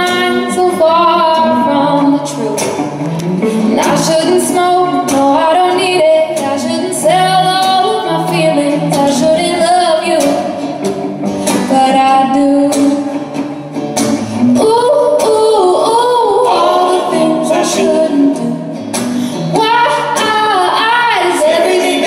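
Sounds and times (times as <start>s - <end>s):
woman singing: 0.0s - 10.8s, 11.4s - 13.4s, 14.4s - 18.8s, 19.4s - 22.0s
strummed guitars: 0.0s - 22.0s.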